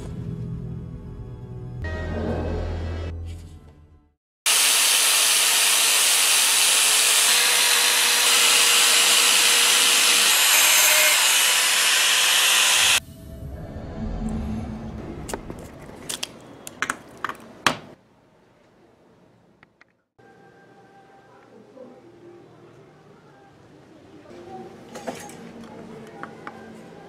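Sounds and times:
low hum: 0:13.0 - 0:16.0.

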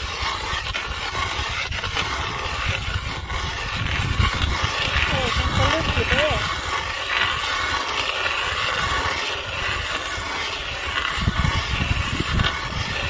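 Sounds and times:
ice auger grinding into ice: 0:00.0 - 0:13.0
low rumbling: 0:00.0 - 0:13.0.

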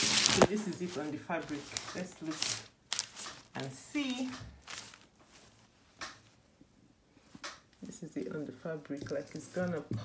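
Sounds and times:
fabric rustling: 0:00.0 - 0:07.4.

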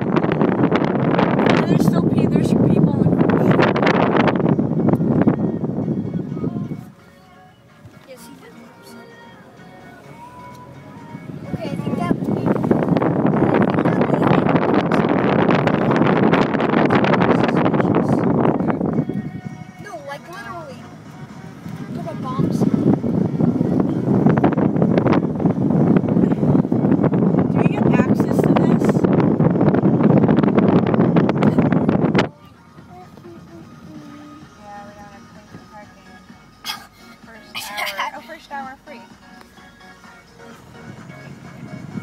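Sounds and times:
car wind and road noise: 0:00.0 - 0:42.0
music: 0:00.0 - 0:42.0.

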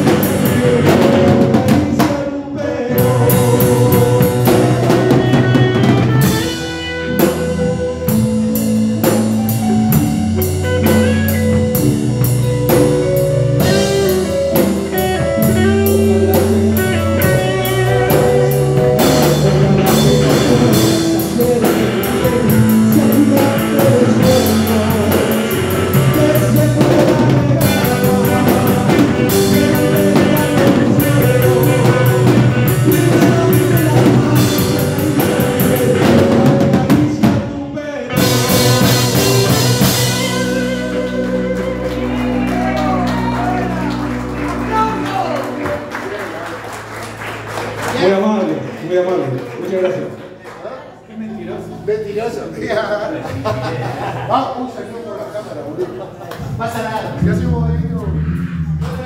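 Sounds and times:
live band playing: 0:00.0 - 0:59.0.

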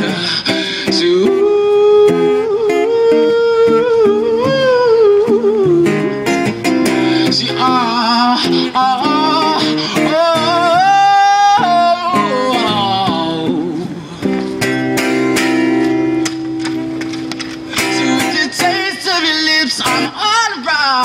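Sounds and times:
man singing: 0:00.0 - 0:14.3, 0:17.6 - 0:21.0
acoustic guitar strumming: 0:00.0 - 0:21.0.

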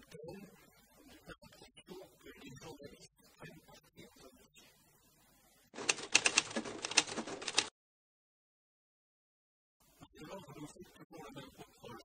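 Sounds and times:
typewriter key clacks: 0:05.8 - 0:07.7.

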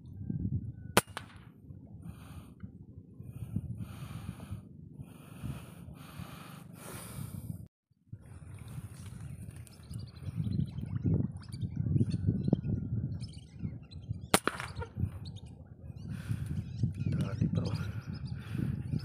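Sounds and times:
rifle shot: 0:01.0 - 0:01.5, 0:14.3 - 0:14.9
hard breathing: 0:02.0 - 0:07.7.

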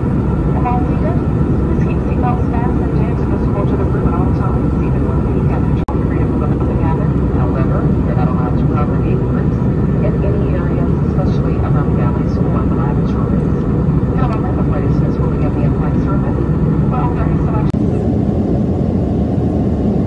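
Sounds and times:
jet airliner cabin roar: 0:00.0 - 0:20.0.

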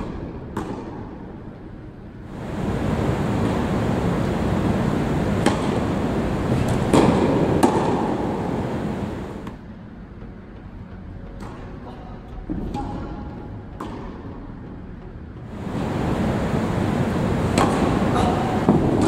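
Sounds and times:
tennis ball struck by racket: 0:00.0 - 0:01.1, 0:02.4 - 0:09.6, 0:17.3 - 0:19.0
loud rushing noise: 0:02.3 - 0:09.6, 0:15.5 - 0:19.0.

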